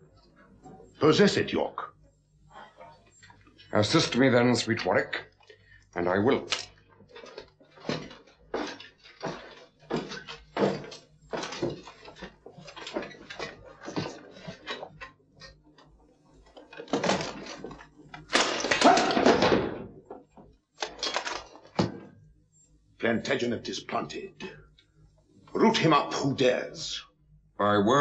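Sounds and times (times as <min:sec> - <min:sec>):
footsteps on steps: 0:07.1 - 0:14.7.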